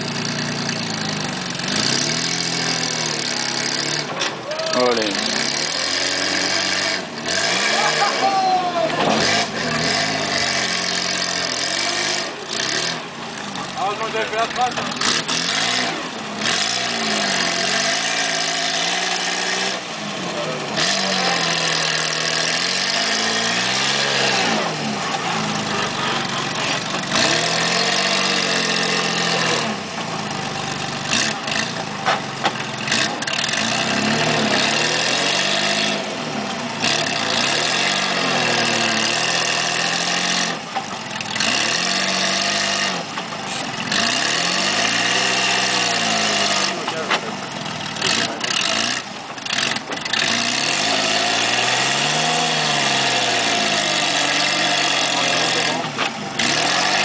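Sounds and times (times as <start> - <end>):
buggy engine revving under load: 0.0 - 57.0.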